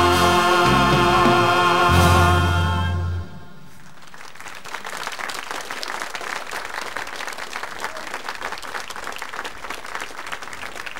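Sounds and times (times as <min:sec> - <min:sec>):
audience applauding: 0:03.7 - 0:10.9.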